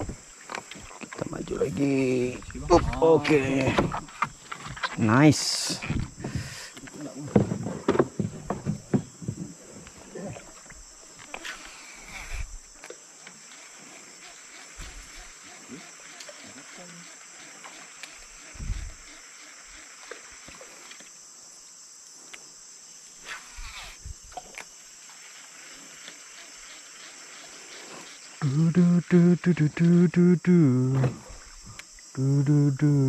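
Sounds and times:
insects droning: 0.0s - 33.0s.

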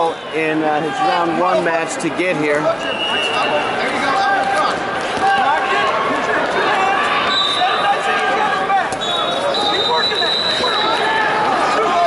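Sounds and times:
crowd voices overlapping: 0.0s - 12.0s.

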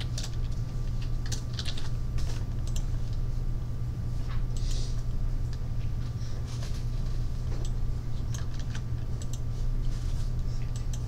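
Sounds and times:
computer keyboard typing: 0.0s - 2.9s, 7.6s - 9.5s
steady low hum: 0.0s - 11.0s.

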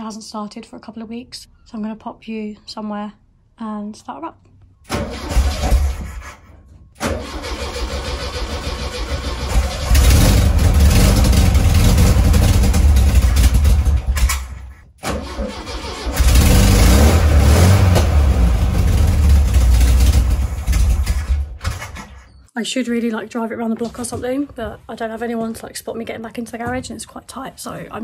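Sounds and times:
car engine starting and running: 4.9s - 6.0s, 7.0s - 22.2s.

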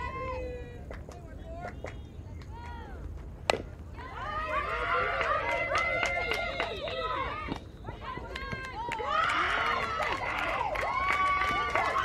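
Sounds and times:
bat cracking ball: 3.4s - 3.8s.

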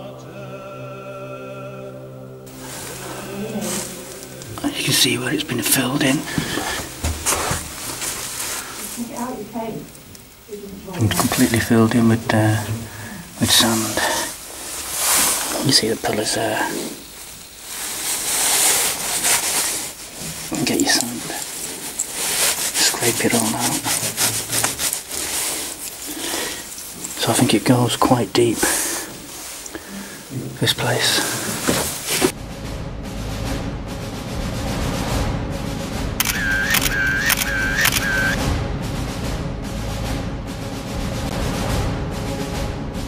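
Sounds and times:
hand scraping sand: 2.5s - 9.1s, 11.0s - 32.4s
steady rustle: 2.5s - 33.2s.

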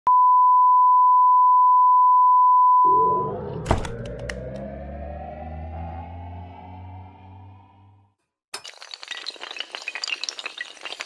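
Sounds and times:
click: 3.9s - 4.6s.

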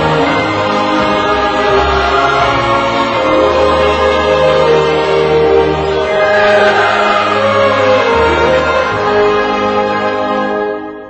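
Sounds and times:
choir holding sustained notes: 0.0s - 11.0s.

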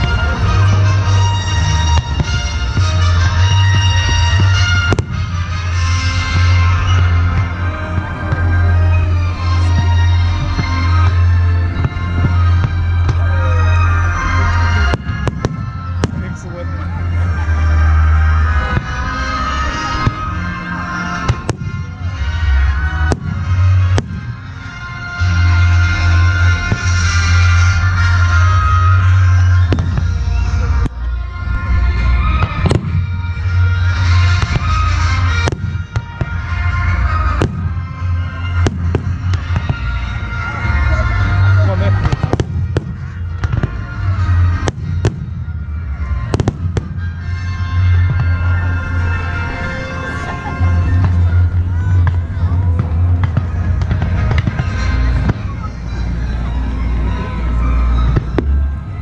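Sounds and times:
fireworks bangs: 0.0s - 58.8s.

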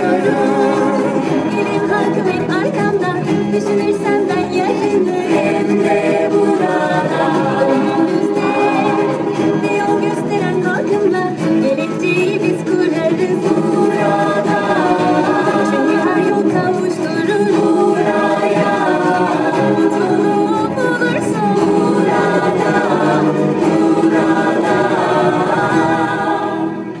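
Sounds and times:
choir singing: 0.0s - 27.0s
instrumental backing: 0.0s - 27.0s.

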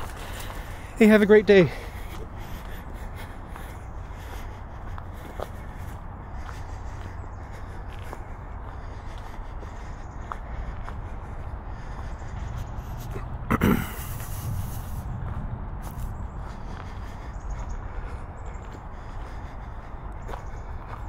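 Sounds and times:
footsteps on leaves: 0.0s - 13.2s, 14.0s - 21.0s
constant low rumble: 0.0s - 21.0s.

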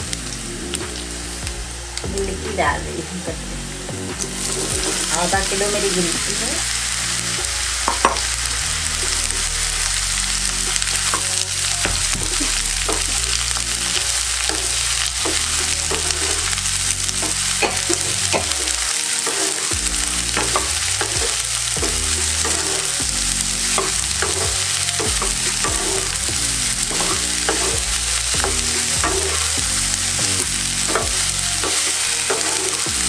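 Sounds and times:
vegetables sizzling in hot oil: 0.0s - 33.0s
wooden spatula scraping pan: 17.2s - 23.0s, 23.6s - 33.0s.

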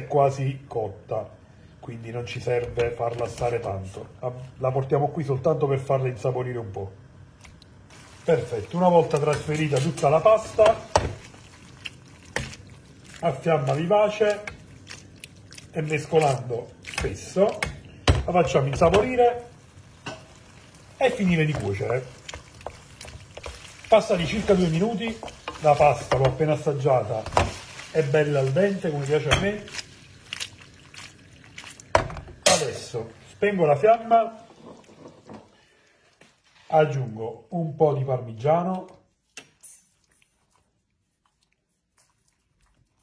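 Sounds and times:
wet squishing of pasta: 7.2s - 37.6s, 38.3s - 43.0s.

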